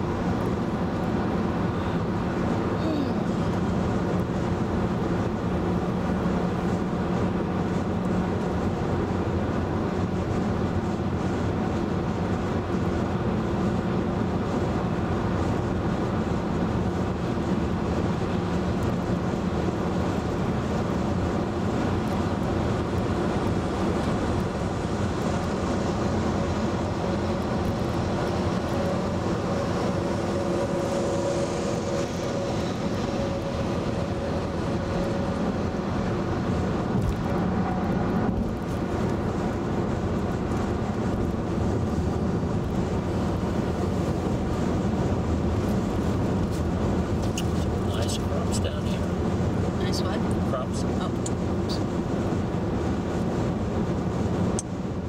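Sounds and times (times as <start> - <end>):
engine drone: 0.0 - 55.0
tyre and road noise: 0.0 - 55.0.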